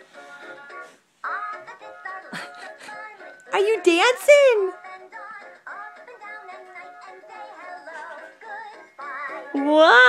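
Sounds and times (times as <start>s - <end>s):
toy playing children's song: 0.0s - 10.0s.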